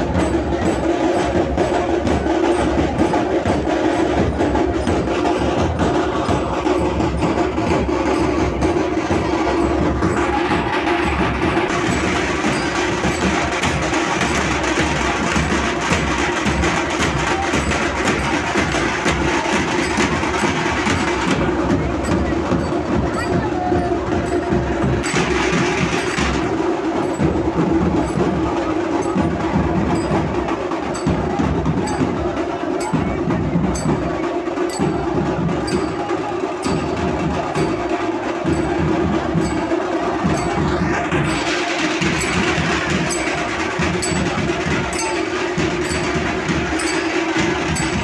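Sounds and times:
bright high percussion layer: 0:00.0 - 0:48.0
dhol drums beating: 0:00.0 - 0:48.0.

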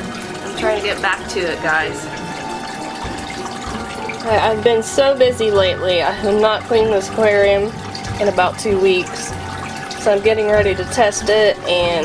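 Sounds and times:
water running and bubbling: 0:00.0 - 0:12.0.

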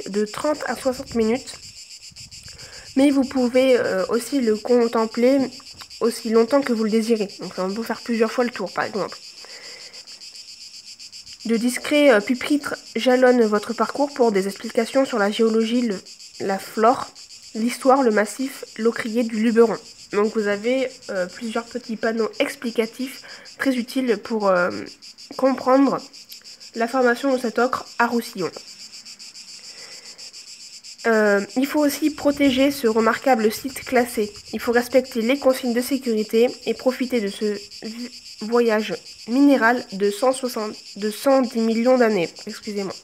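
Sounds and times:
insects chirping: 0:00.0 - 0:43.0.

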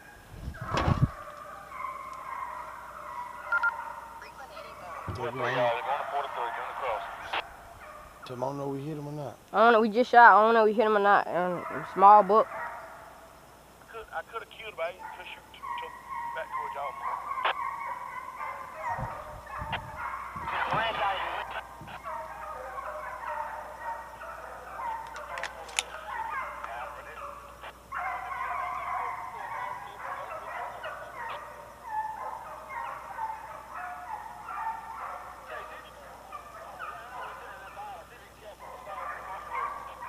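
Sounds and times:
hounds baying: 0:00.0 - 0:09.3, 0:10.2 - 0:40.0.

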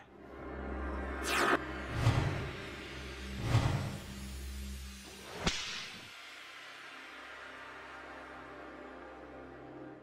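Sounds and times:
whip-like crack and swoosh: 0:05.2 - 0:06.2.

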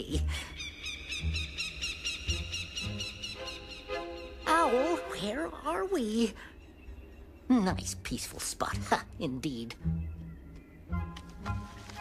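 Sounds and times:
eerie orchestral music: 0:00.2 - 0:06.4.

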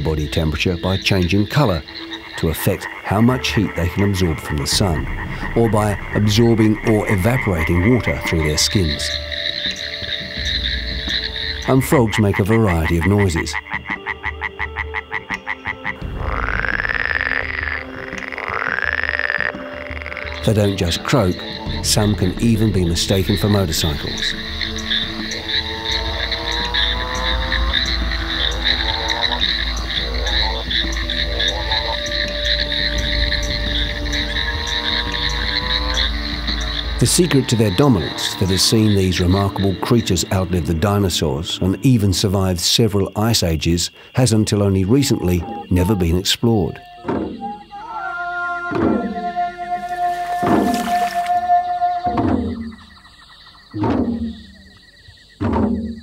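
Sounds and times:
tree frogs trilling in chorus: 0:00.0 - 0:56.0.

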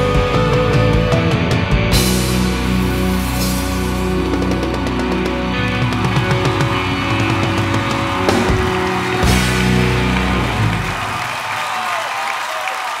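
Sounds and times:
drum and cymbal hits: 0:00.0 - 0:11.2
rock band playing: 0:00.0 - 0:11.9
audience applause: 0:04.3 - 0:13.0.

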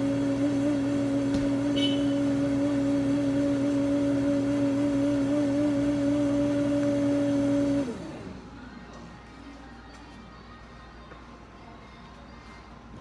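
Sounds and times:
electric motor humming and winding down: 0:00.0 - 0:08.4.

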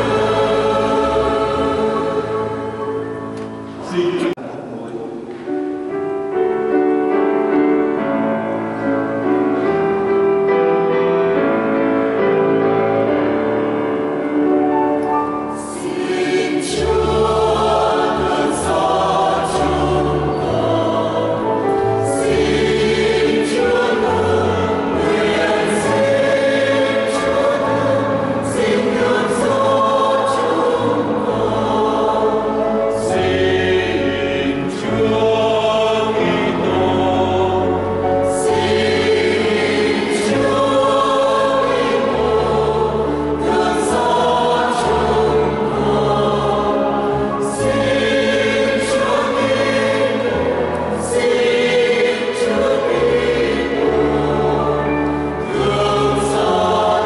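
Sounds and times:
mixed choir singing a hymn: 0:00.0 - 0:04.4, 0:06.3 - 0:57.0.

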